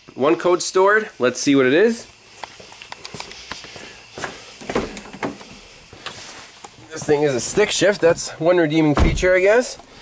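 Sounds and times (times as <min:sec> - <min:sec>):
footsteps: 0:02.0 - 0:08.4
handling knocks and rustles: 0:02.8 - 0:08.2.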